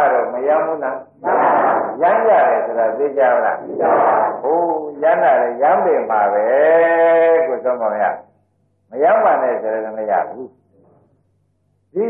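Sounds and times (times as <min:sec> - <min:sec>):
monk preaching: 0:00.0 - 0:08.3, 0:08.9 - 0:10.6.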